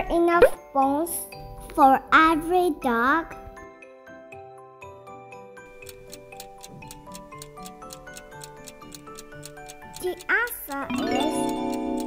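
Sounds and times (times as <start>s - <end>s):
light background music: 0.0s - 12.0s
quick clock-like ticking: 5.7s - 12.0s.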